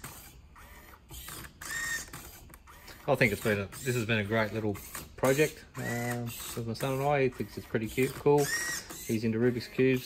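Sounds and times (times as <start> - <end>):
servo motors whining: 0.0 - 10.0.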